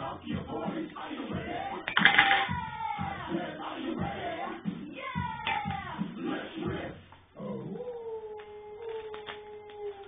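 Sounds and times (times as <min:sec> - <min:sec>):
dog-like howl from television: 0:07.4 - 0:10.0.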